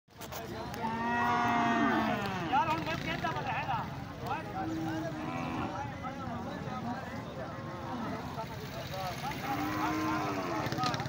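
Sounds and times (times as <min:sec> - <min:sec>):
crowd voices: 0:00.1 - 0:11.0
cattle mooing: 0:00.8 - 0:02.6, 0:04.6 - 0:05.8, 0:09.4 - 0:10.8.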